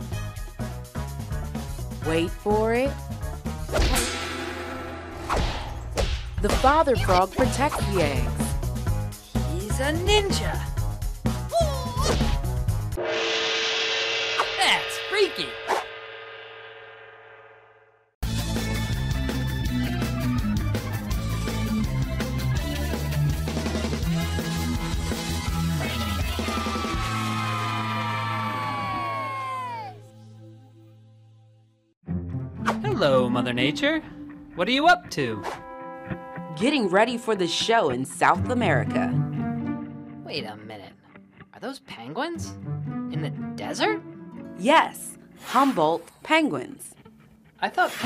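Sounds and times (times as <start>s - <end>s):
whip-like hit: 3.7s - 6.7s
held low music note: 13.0s - 17.8s.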